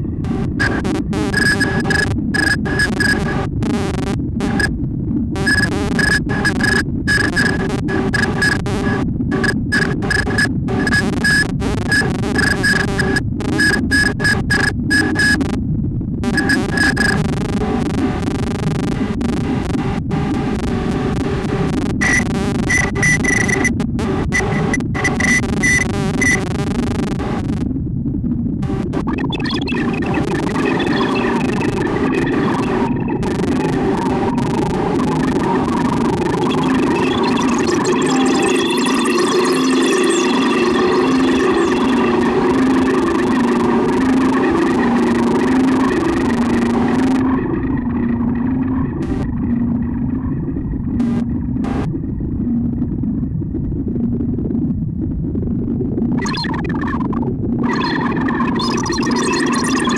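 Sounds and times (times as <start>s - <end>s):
dense noisy synth layers: 0.0s - 59.9s
low synth drone: 0.0s - 59.9s
repeating clicking pattern: 0.4s - 4.7s, 5.4s - 15.5s, 16.2s - 27.2s, 28.7s - 50.3s, 50.9s - 52.0s, 56.2s - 59.9s
sweeping high tones: 29.3s - 51.9s.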